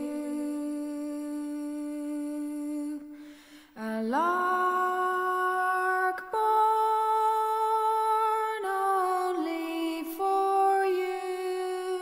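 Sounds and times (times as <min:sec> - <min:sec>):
woman singing a cappella: 0:00.0 - 0:12.0.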